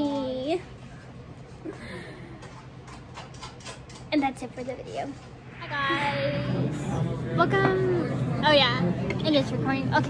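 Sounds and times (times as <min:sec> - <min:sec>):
steady low hum: 0:05.1 - 0:09.8.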